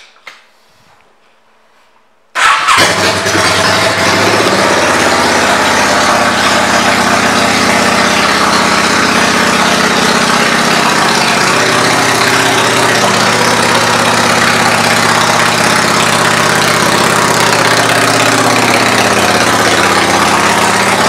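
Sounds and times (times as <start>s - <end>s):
motorcycle engine idling: 2.4s - 21.0s.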